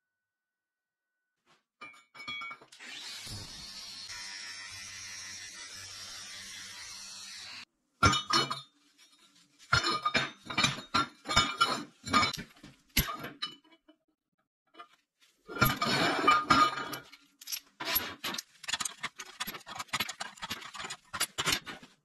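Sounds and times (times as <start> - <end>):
steel pieces clinking on table: 15.6 - 21.7.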